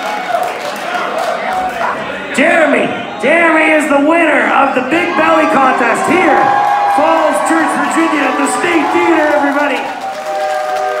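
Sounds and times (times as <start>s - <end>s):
people talking and calling out: 0.7s - 10.1s.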